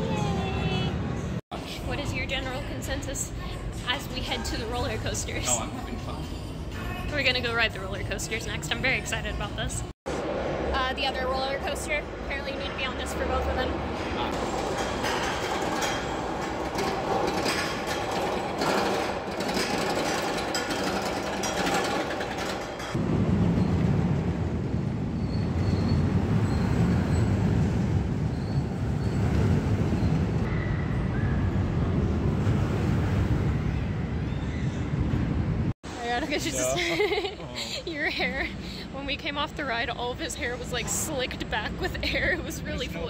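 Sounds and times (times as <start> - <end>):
roller coaster train on track: 11.7 - 33.9.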